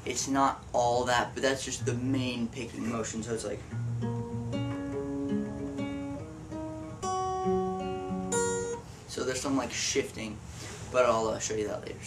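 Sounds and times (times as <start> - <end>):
finger-picked acoustic guitar: 0.8 - 11.2.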